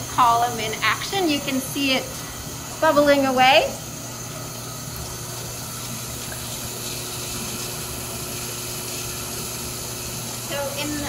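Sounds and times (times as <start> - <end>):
liquid bubbling: 0.0 - 10.9
faint hum: 0.0 - 11.0.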